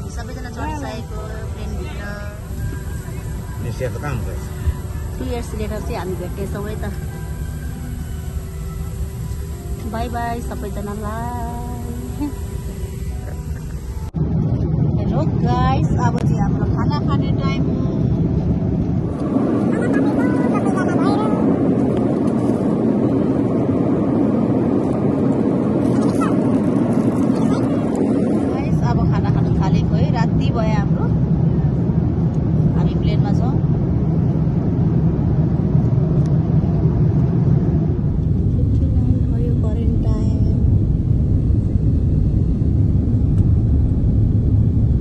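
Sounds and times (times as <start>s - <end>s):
jet engine cabin rush: 0.0s - 45.0s
faint voices: 25.8s - 31.9s.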